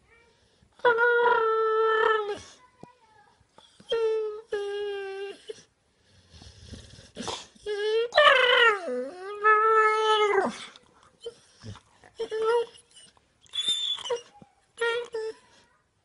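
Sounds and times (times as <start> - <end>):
dog whining in sleep: 0.8 - 2.6, 3.6 - 5.7, 6.5 - 15.6.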